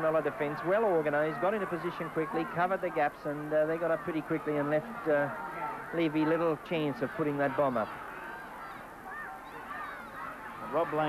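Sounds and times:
crowd murmur: 0.0 - 11.0
distant spectators shouting: 0.0 - 11.0.

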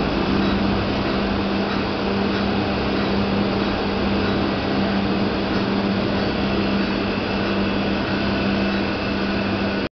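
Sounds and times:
low motor hum: 0.0 - 9.9.

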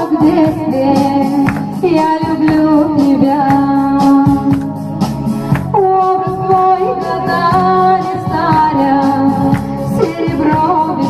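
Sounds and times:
instrumental accompaniment with beat: 0.0 - 11.0
person singing slow song: 5.7 - 11.0.

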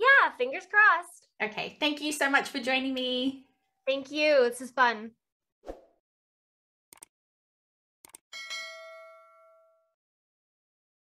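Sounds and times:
mouse clicks: 6.9 - 7.1
notification bell ding: 8.4 - 9.9.

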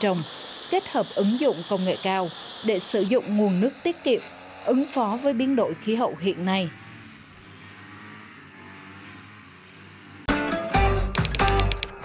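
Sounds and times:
brush cutter engine running: 0.0 - 10.2.

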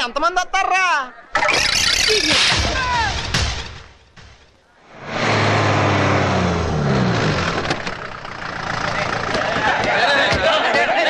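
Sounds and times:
lorry engine humming: 4.8 - 10.7
men's voices: 8.7 - 11.0.

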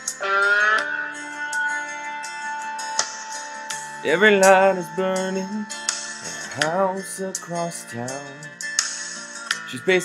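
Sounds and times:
country guitar music: 0.0 - 10.0
sung lines: 0.0 - 10.0.

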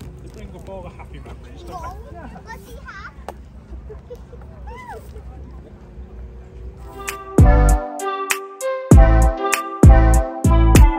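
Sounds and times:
stroller wheels rolling on tarmac: 0.0 - 7.2
distant voices chattering: 0.0 - 7.8.

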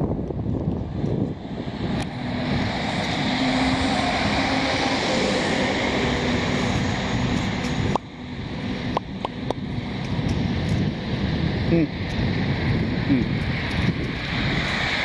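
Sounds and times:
bus engine passing: 0.0 - 15.0
wind rumbling on microphone: 0.0 - 15.0.

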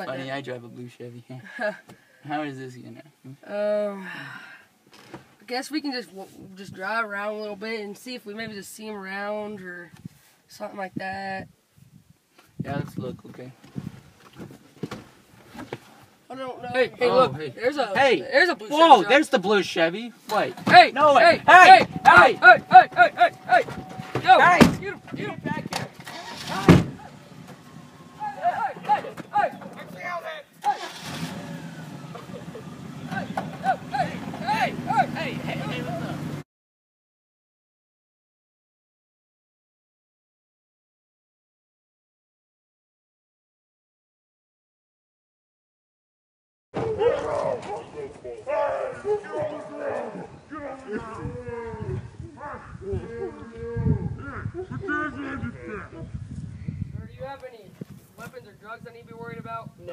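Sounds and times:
loud thump: 20.6 - 27.6
people calling out long wordless shouts: 20.7 - 25.4, 28.0 - 31.2, 32.0 - 36.3.

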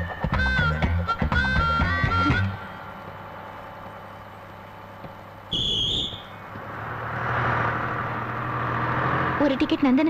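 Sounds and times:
bus engine running: 0.0 - 10.0
shrill whistle blast: 5.5 - 6.4.

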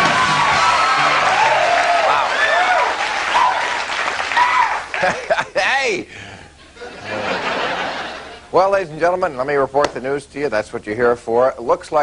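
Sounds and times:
whoops from audience: 0.0 - 4.9
audience applauding: 0.0 - 5.3.

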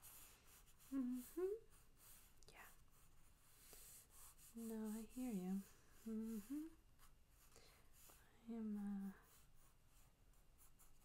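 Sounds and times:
woman saying mm-hmm: 0.8 - 1.7, 4.6 - 6.8.

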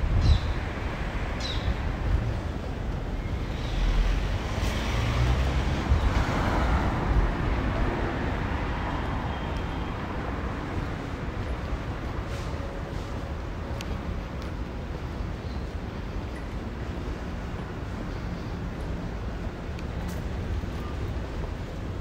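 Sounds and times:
wind on microphone: 0.0 - 3.0
car passing: 3.7 - 9.3.

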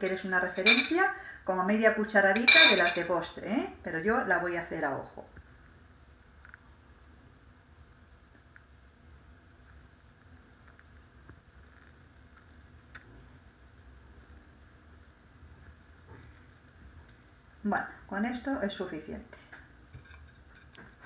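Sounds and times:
faint small clicks: 6.4 - 6.6.

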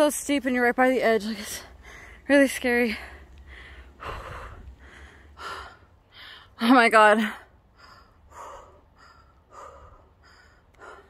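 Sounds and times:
faint low rumble: 0.0 - 6.7
woman breathing hard: 1.6 - 2.3, 3.0 - 6.6, 7.4 - 11.0.

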